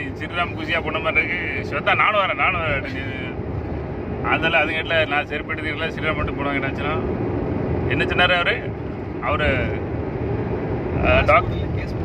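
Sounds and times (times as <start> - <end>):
man talking: 0.0 - 3.4, 4.2 - 7.0, 11.0 - 12.0
car road and engine noise: 0.0 - 12.0.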